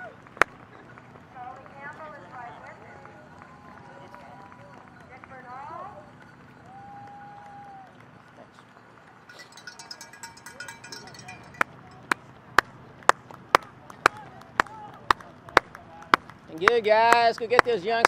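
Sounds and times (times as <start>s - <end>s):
rapid jingling: 9.3s - 12.2s
hand-clapping: 9.3s - 18.0s.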